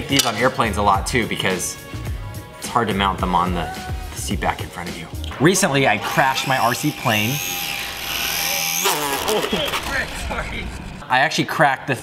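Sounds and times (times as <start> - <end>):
electric motor high whine: 5.8 - 11.0.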